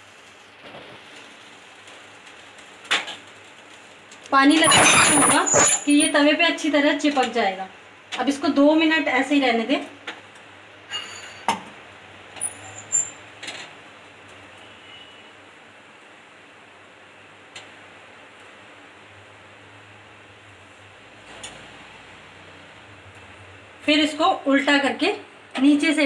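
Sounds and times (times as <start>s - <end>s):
flatbread sizzling on griddle: 0.0s - 6.4s, 10.0s - 23.9s.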